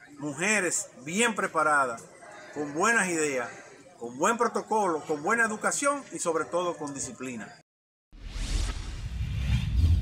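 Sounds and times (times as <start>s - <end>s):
deep rumble: 8.2s - 10.0s
whoosh sweeping: 8.2s - 10.0s.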